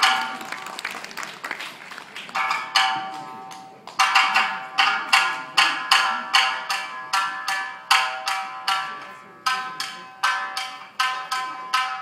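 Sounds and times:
shamisen struck with plectrum: 0.0 - 0.4, 2.4 - 12.0.

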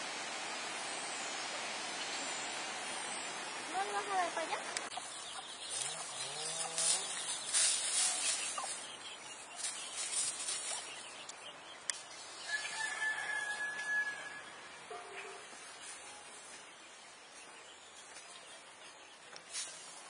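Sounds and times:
rooster crowing: 12.5 - 14.6.

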